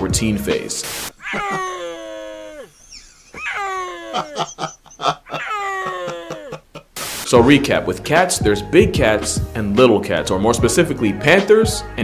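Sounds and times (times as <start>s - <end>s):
snow leopard yowling: 1.2s - 6.6s
man laughing: 1.2s - 7.2s.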